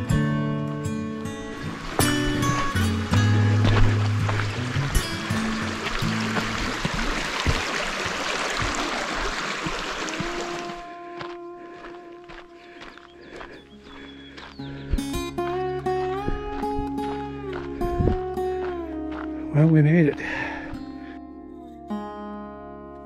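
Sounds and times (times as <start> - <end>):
music of long held notes: 0.0 - 7.3, 8.6 - 23.0
creek water rushing: 0.0 - 11.3.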